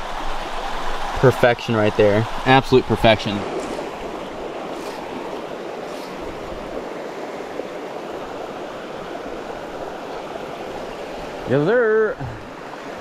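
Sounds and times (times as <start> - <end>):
creek water flowing: 0.0 - 13.0.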